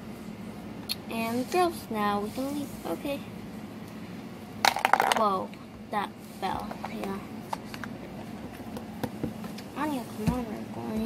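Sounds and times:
plastic toy clattering on floor: 0:04.7 - 0:05.3.

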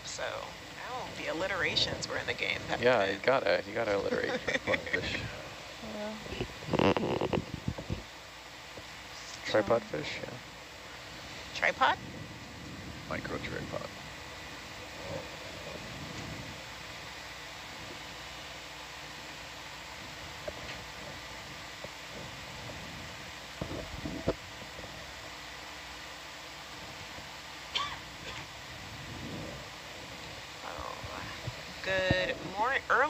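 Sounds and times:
equipment hum and hiss: 0:00.0 - 0:33.0.

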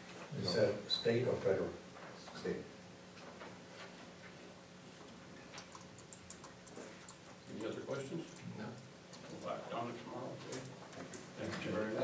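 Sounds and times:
faint clicks: 0:05.0 - 0:09.5.

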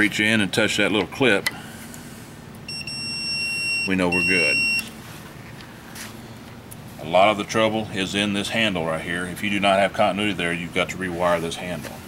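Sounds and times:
multimeter continuity beep: 0:02.7 - 0:05.0.

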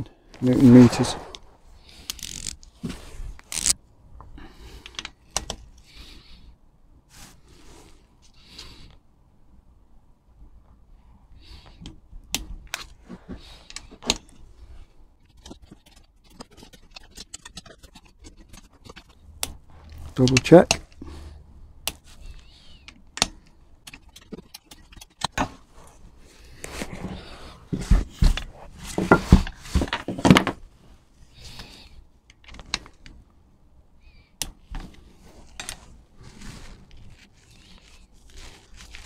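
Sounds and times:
handling rustles: 0:23.2 - 0:33.2, 0:34.6 - 0:39.0.

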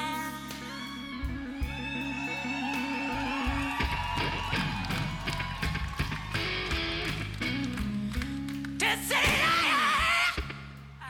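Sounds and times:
electric guitar lead: 0:00.0 - 0:10.8
drums: 0:00.0 - 0:11.0.

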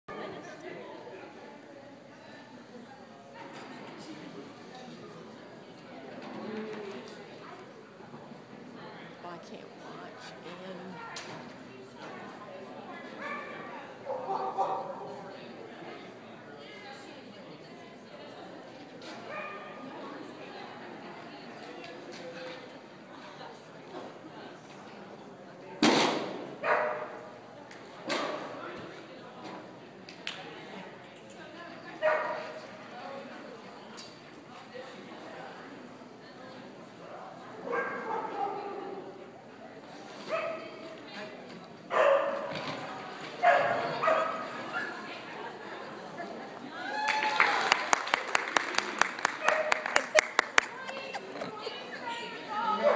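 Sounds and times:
dog barking: 0:14.1 - 0:14.9, 0:26.6 - 0:27.1, 0:41.9 - 0:42.5
voices: 0:26.6 - 0:52.9.

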